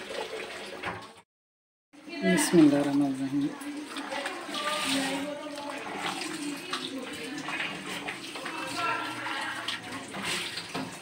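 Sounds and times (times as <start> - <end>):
wet stirring and sizzling in a wok: 2.0 - 11.0.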